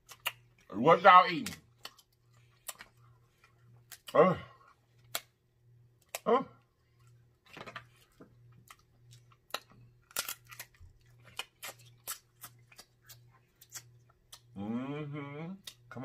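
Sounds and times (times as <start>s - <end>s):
chewing and mouth smacking: 0.0s - 0.7s, 1.4s - 4.2s, 6.9s - 14.5s
crab shell cracking: 9.1s - 14.5s.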